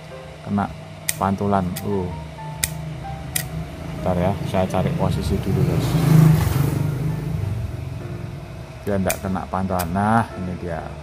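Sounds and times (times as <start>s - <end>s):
low engine hum: 2.1s - 9.6s.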